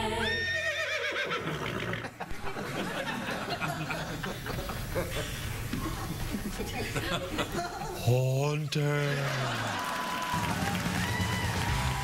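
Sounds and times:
horse whinnying: 0.2s - 2.1s.

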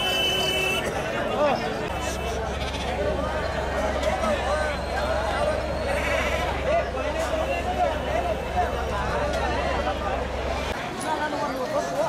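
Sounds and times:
crowd chatter: 0.0s - 12.0s
sheep and goats bleating: 2.3s - 3.0s, 5.8s - 6.7s.

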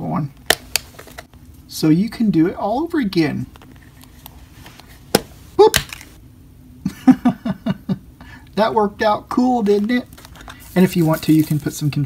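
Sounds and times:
plastic cap popping off: 5.1s - 6.1s.

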